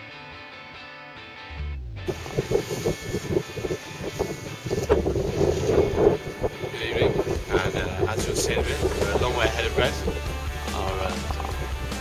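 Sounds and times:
wind buffeting microphone: 2.1s - 12.0s.

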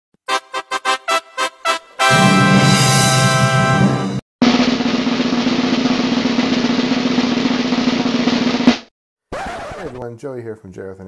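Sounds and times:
rapid snare drum roll: 4.4s - 8.9s.

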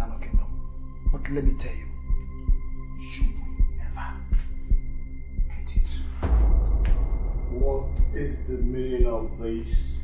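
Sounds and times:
low heartbeat-like thump: 0.2s - 10.0s
sustained drone: 2.1s - 10.0s.

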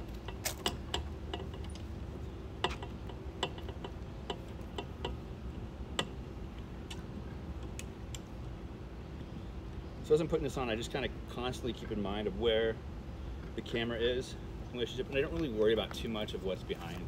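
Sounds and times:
low steady rumble: 0.0s - 17.0s.

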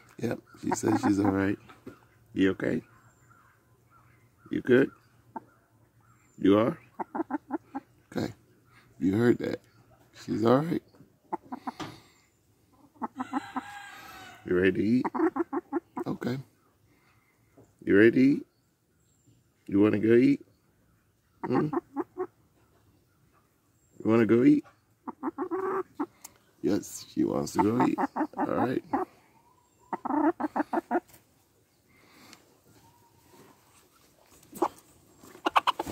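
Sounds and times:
hen clucking: 0.0s - 2.8s, 6.5s - 8.3s, 11.2s - 16.4s, 21.4s - 23.5s, 24.4s - 31.2s, 32.6s - 35.9s.

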